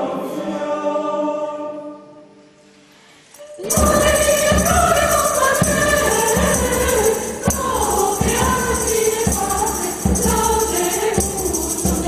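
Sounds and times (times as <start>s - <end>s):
mixed choir singing a hymn: 0.0s - 2.2s, 3.5s - 12.0s
jingling percussion: 3.3s - 12.0s
steady beat: 3.7s - 12.0s.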